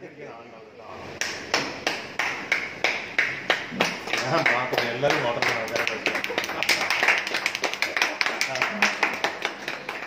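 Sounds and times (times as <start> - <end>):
people clapping: 1.1 - 10.0.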